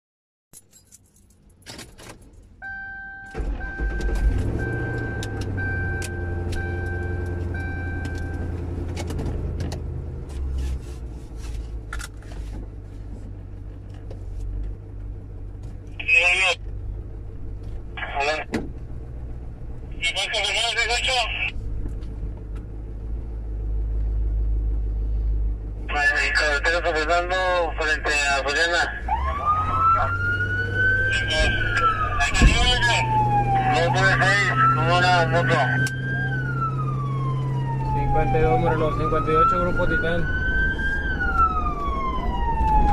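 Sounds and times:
dashboard chime beeping: 0:02.6 - 0:08.5
ignition clicks: 0:03.3 - 0:09.8
vehicle engine running: 0:03.4 - 0:42.9
siren yelps: 0:27.0 - 0:42.9.

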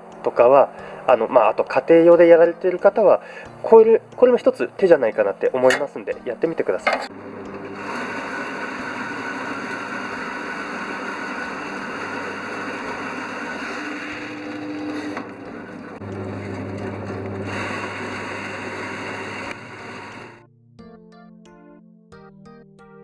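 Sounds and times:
small machine humming: 0:07.1 - 0:20.4.

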